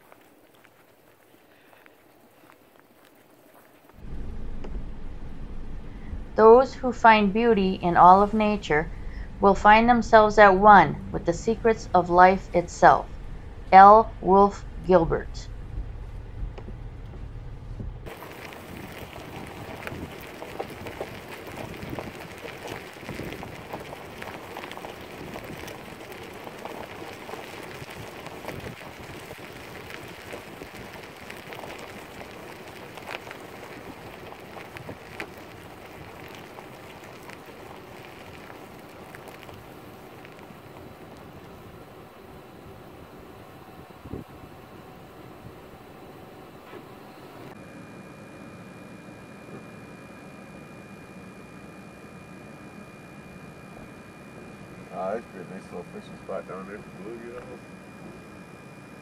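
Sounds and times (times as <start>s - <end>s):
steady hiss with crackles: 0.0s - 17.2s, 18.0s - 59.0s
faint high whine: 0.0s - 59.0s
vehicle running hum: 3.8s - 59.0s.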